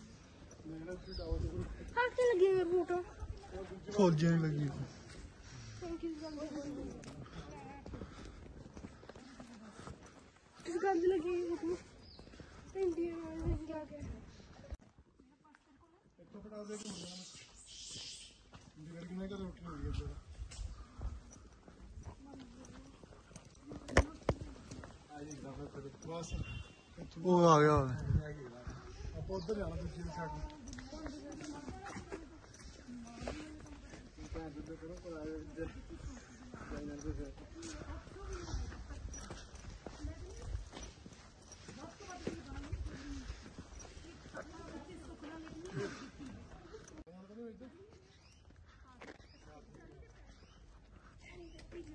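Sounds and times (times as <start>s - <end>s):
indistinct voices talking: 0.0s - 14.8s, 16.6s - 51.9s
footsteps on paved road: 0.0s - 51.9s.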